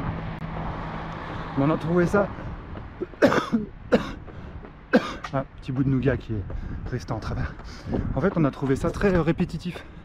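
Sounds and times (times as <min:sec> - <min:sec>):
man coughing: 0:03.0 - 0:04.2, 0:04.9 - 0:05.3.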